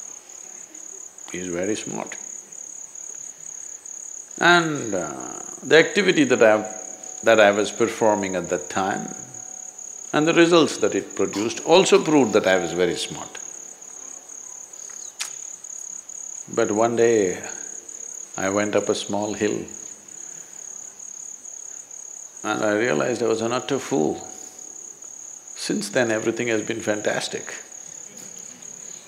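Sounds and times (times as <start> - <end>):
crickets chirping: 0.0 - 29.0
sharp click: 14.8 - 15.4.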